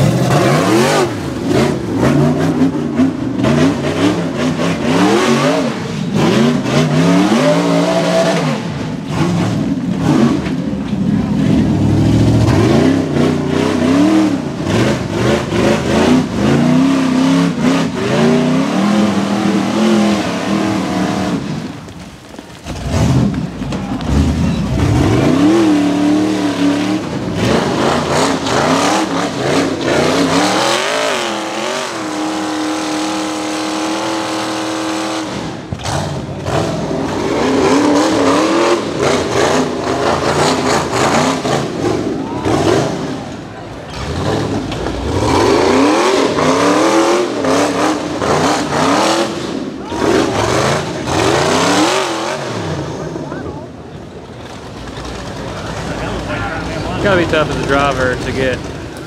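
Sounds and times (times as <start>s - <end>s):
buggy engine revving: 0.0s - 59.0s.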